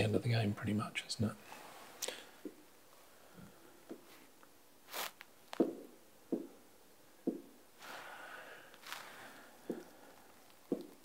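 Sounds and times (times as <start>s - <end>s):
faint rustle: 7.8s - 10.7s.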